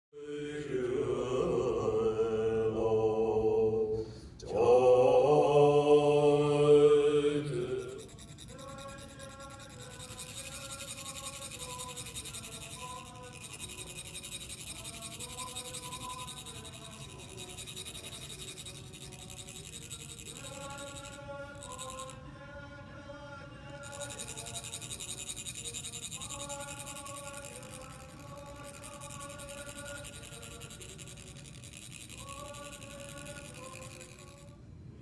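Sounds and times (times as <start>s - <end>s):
monks chanting in deep voices: 0.2s - 8.0s
fine rapid metal rasping: 7.4s - 22.2s, 23.7s - 34.5s.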